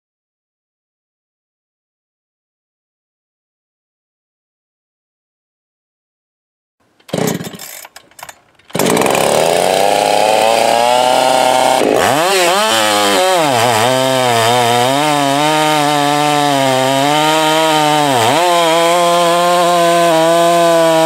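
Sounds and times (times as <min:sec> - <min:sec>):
chainsaw bogging while cutting log: 0:07.0 - 0:21.0
chainsaw running at high revs: 0:07.1 - 0:08.0, 0:08.7 - 0:21.0.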